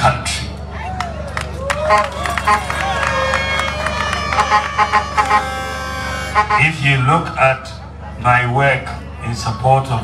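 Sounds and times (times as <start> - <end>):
crowd cheering and shouting: 0.6 - 10.0
horns blowing held notes: 1.8 - 7.4.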